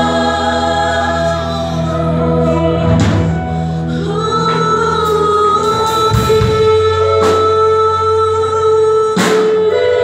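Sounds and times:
singers holding long note: 0.0 - 10.0
worship band accompaniment: 0.0 - 10.0.

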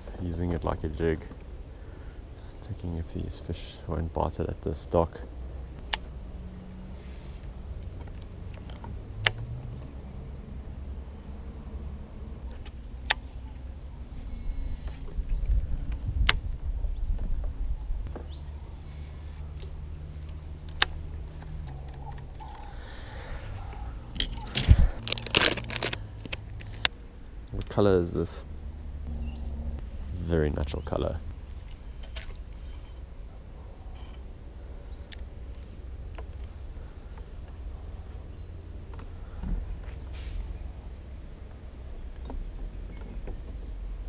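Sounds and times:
low steady hum: 0.0 - 44.0
plastic tackle box clatter: 24.3 - 26.0.

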